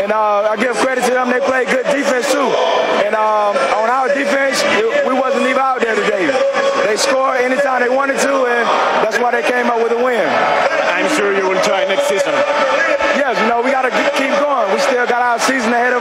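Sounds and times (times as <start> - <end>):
man speaking: 0.0 - 16.0.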